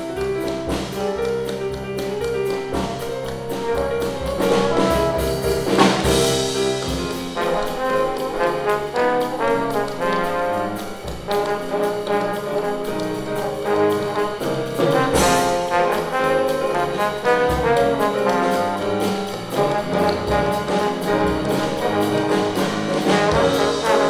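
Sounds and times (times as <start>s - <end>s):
drum kit: 0.0s - 24.0s
piano: 0.0s - 24.0s
trombone playing swing jazz: 0.0s - 24.0s.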